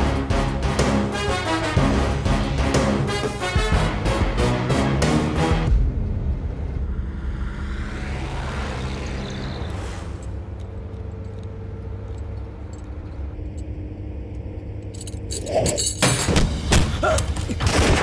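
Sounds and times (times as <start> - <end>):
whoosh: 5.7 - 10.6
low rumble of moving van: 5.7 - 16.5
metallic clinks of handcuffs: 14.8 - 16.4.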